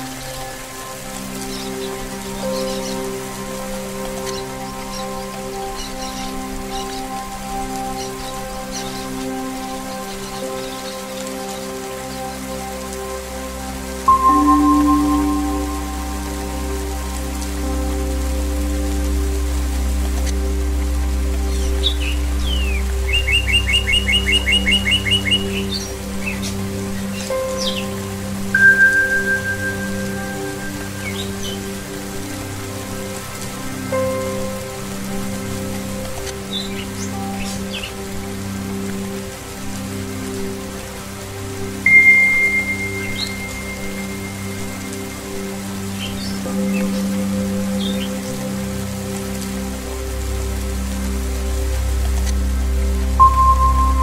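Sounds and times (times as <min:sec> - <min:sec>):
low drone relaxation music: 0:00.0 - 0:54.0
steady rain: 0:00.0 - 0:54.0
singing bowl ringing: 0:14.1 - 0:16.8, 0:28.6 - 0:31.1, 0:41.9 - 0:44.7, 0:53.2 - 0:54.0
birds chirping: 0:41.9 - 0:44.0.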